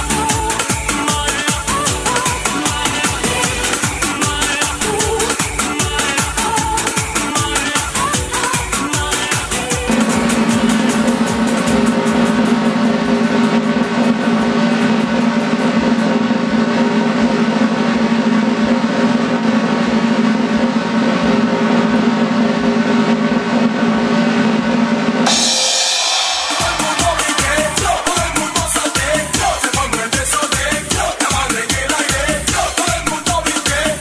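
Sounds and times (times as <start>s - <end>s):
fast snare drum roll: 0.0s - 34.0s
cymbal crash: 9.9s - 31.3s.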